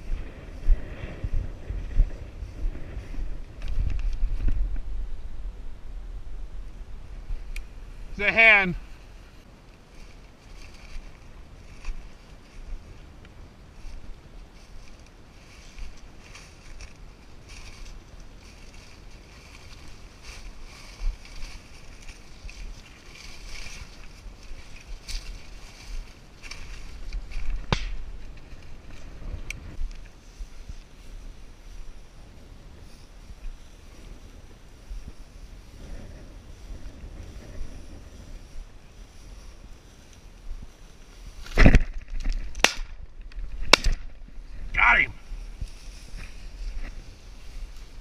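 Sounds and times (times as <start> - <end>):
wind rumble on microphone: 0.0 - 8.2, 8.8 - 48.0
dry grass brushing and crunching: 0.0 - 48.0.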